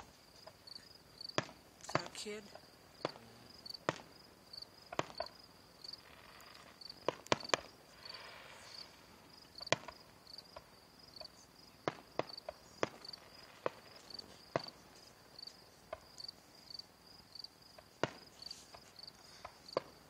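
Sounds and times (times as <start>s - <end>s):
distant fireworks bangs: 0.0s - 16.8s, 17.7s - 20.0s
crickets chirping: 0.0s - 20.0s.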